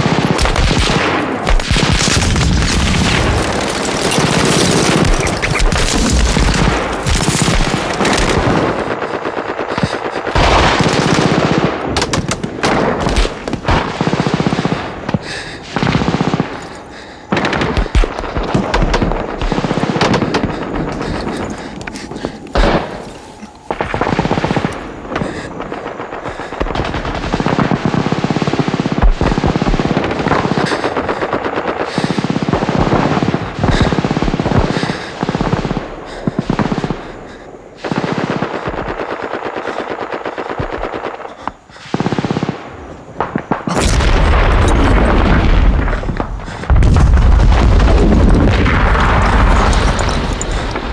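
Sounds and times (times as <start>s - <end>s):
machine-gun fire: 0.0s - 23.1s, 23.7s - 37.1s.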